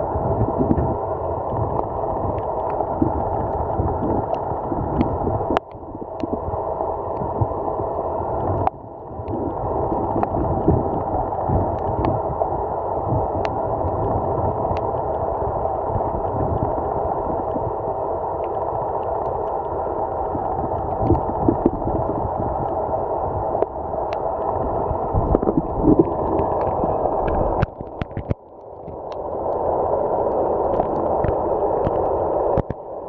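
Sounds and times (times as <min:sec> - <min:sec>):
muffled underwater water rush: 0:00.0 - 0:33.0
low rumble: 0:20.3 - 0:32.6.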